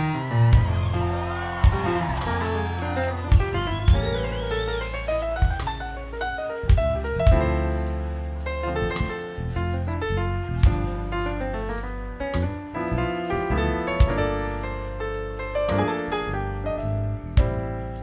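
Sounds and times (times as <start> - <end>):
live band playing instrumental: 0.0 - 9.6.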